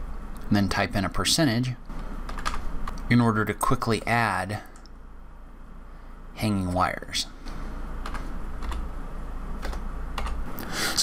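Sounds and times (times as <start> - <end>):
steady low hum: 0.0 - 11.0
computer keyboard clicks: 2.3 - 3.0, 8.0 - 8.8, 9.6 - 10.4.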